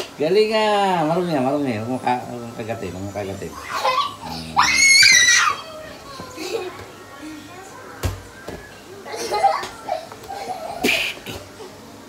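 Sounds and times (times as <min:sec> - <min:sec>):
faint voices: 0:00.0 - 0:12.0
toddler squealing: 0:03.5 - 0:06.2.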